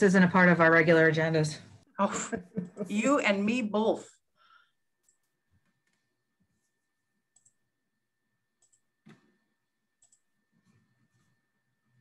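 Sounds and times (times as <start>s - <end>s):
computer mouse clicks: 7.3s - 7.6s, 8.6s - 9.4s, 10.0s - 10.3s.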